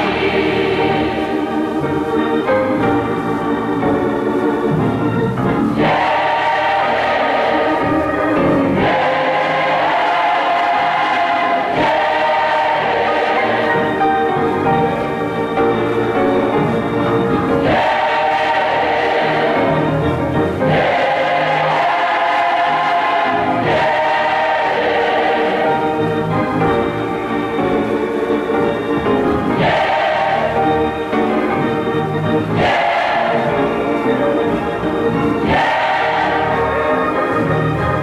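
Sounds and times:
gospel choir singing: 0.0s - 38.0s.

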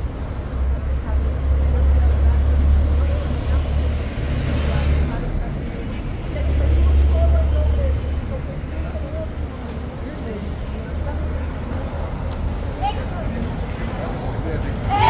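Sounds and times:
vehicle engine rumble: 0.0s - 15.0s.

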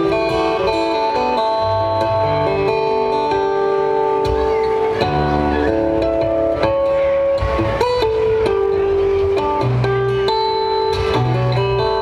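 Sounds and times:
fingerstyle acoustic guitar: 0.0s - 12.0s.

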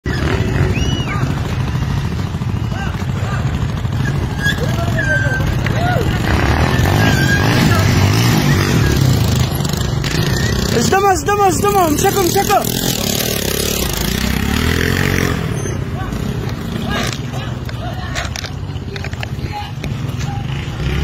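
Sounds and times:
road traffic rumble: 0.0s - 21.0s
motorcycle engine passing: 0.1s - 21.0s.

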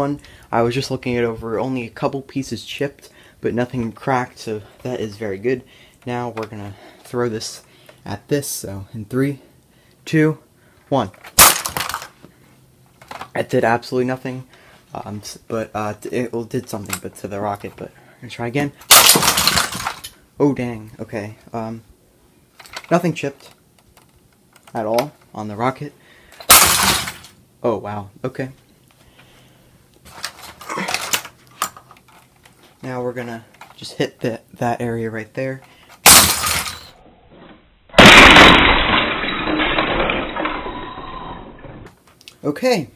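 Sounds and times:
loud plastic crash: 11.3s - 12.1s, 18.8s - 20.1s, 26.4s - 27.3s, 36.0s - 36.9s, 38.0s - 41.0s
small plastic bricks clattering: 11.3s - 12.2s, 18.8s - 20.1s, 26.4s - 27.3s, 30.1s - 32.2s, 38.0s - 41.9s.

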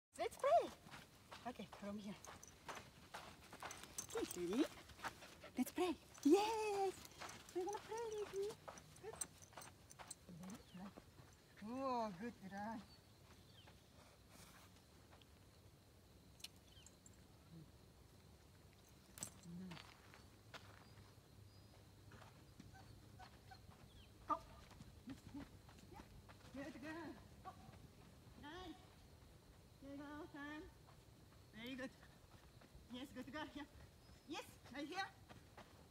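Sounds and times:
footsteps on sand: 0.3s - 11.1s.

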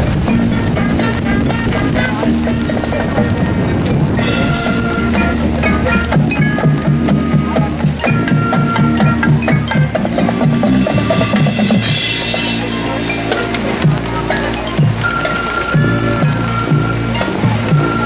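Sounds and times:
bouncing bass line: 0.0s - 18.0s
mallet keyboard notes: 0.0s - 18.0s
marching band playing: 0.0s - 18.0s.

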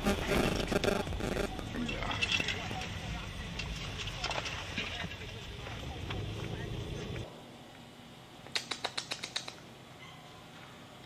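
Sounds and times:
sharp clicks: 8.5s - 9.6s.

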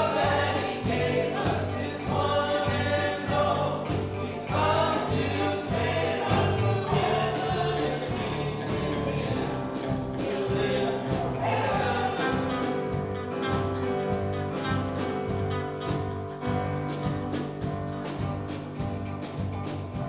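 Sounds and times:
group singing worship song: 0.0s - 16.3s
instrumental accompaniment: 0.0s - 20.0s.

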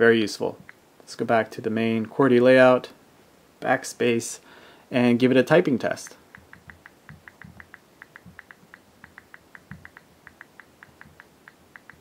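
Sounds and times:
fingertips tapping on glass: 6.3s - 12.0s
touchscreen keyboard clicks: 6.3s - 12.0s.

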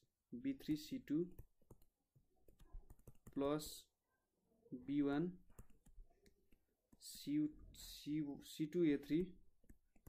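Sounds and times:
stylus tapping on tablet screen: 1.1s - 3.8s, 5.4s - 7.3s, 9.5s - 10.0s.

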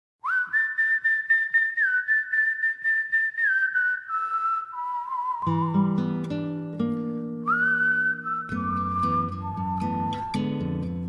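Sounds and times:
whistled melody: 0.2s - 11.0s.

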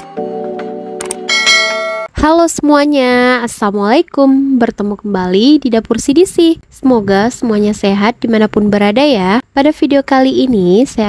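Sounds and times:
bright bell chime: 1.3s - 2.1s.

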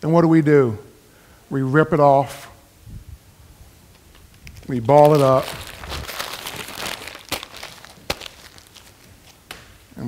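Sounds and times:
paper being crumpled: 4.4s - 9.5s.

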